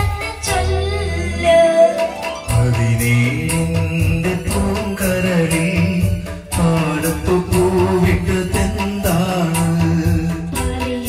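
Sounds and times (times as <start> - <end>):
backing track with steady beat: 0.0 - 11.0
man singing into microphone: 1.4 - 11.0.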